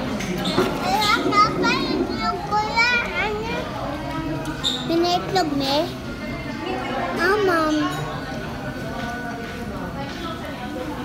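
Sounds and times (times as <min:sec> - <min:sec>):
dining room hum: 0:00.0 - 0:11.0
children calling and squealing: 0:00.6 - 0:03.9.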